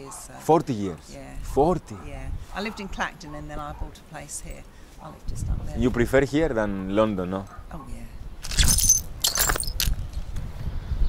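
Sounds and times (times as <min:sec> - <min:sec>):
bright jingling clatter: 0:08.4 - 0:10.0.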